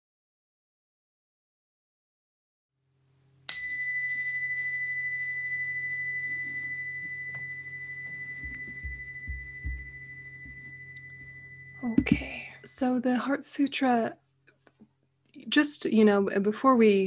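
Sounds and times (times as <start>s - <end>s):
meditation bell ringing: 3.5s - 12.8s.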